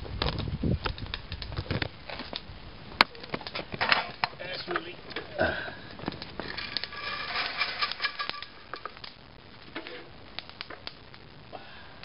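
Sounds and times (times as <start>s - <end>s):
coffee beans crackling: 3.1s - 11.2s
coffee beans rattling into colander: 6.4s - 8.9s.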